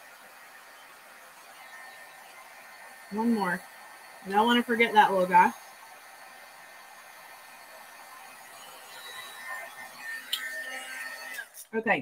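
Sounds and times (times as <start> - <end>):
heat gun blowing hot air: 0.0 - 11.8
faint whine: 0.0 - 12.0.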